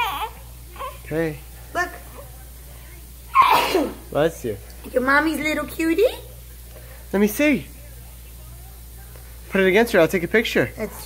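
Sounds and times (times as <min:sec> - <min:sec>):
baby sneezing: 0:03.3 - 0:04.1.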